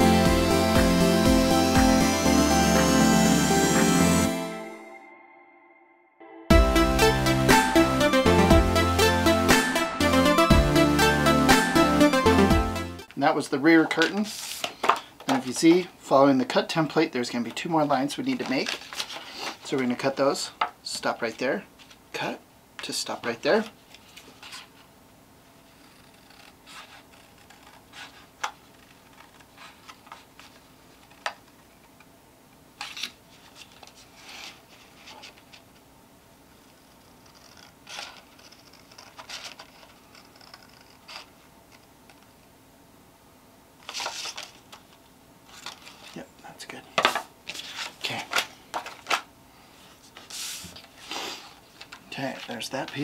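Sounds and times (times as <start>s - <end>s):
paper rustling: 13.8s - 15.9s, 17.3s - 20.1s, 23.2s - 24.9s, 25.8s - 31.5s, 32.8s - 35.7s, 37.3s - 42.3s, 43.8s - 46.3s, 47.0s - 49.3s, 49.9s - 53.0s
scissors snipping paper: 37.2s - 41.3s.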